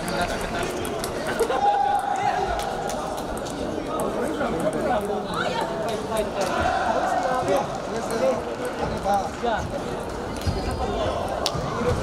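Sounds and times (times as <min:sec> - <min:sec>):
table tennis balls clicking: 0:00.0 - 0:06.3
background chatter of voices: 0:00.0 - 0:12.0.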